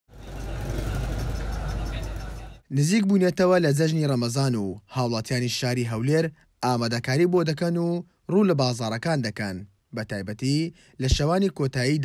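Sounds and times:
traffic hum: 0.1 - 2.7
crowd chatter: 0.2 - 2.6.

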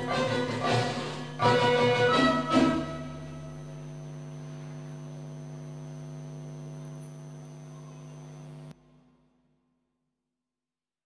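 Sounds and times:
low mains hum: 0.0 - 9.5.

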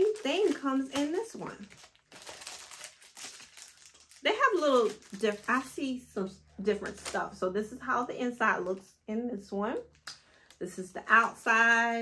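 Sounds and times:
paper and packaging rustling: 0.0 - 5.8.

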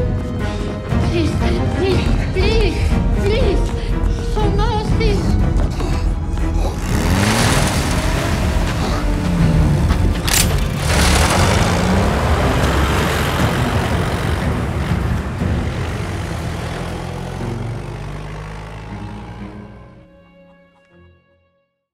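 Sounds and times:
vehicle engines revving: 6.3 - 20.0.

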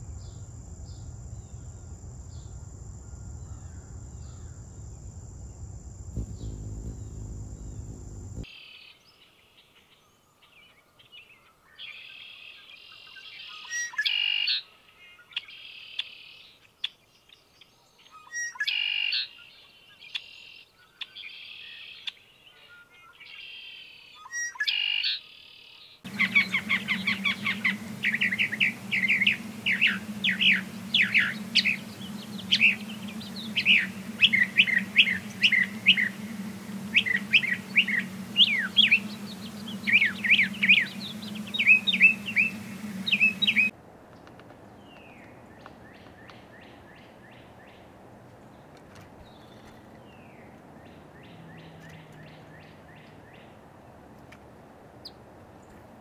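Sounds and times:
low steady hum: 0.0 - 8.5, 26.1 - 43.7
bird singing varied chirps: 6.2 - 8.4, 26.1 - 43.7
buzzy bird calls: 6.2 - 8.4, 26.1 - 43.7.

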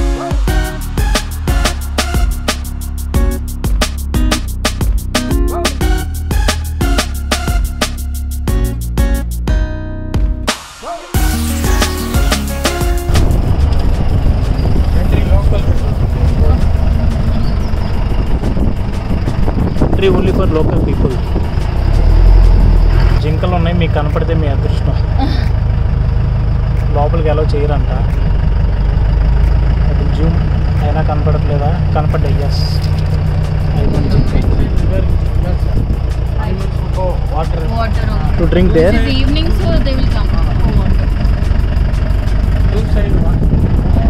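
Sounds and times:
vehicle engine rumbling: 0.0 - 9.5, 10.4 - 44.0.

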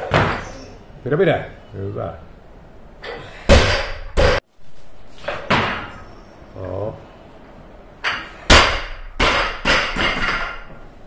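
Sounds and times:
barbell bouncing and rattling: 8.6 - 10.8.

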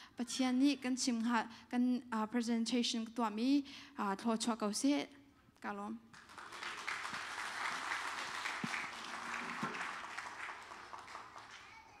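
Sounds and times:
congregation applauding: 6.1 - 12.0.

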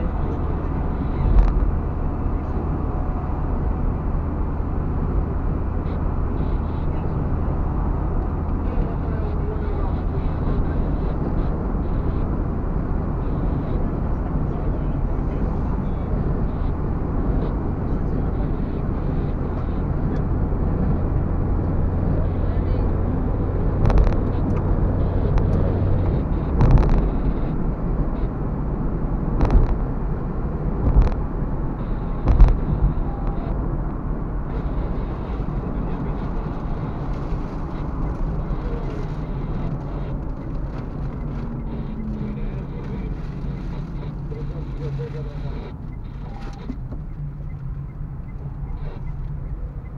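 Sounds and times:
car road noise rumble: 0.0 - 49.9.

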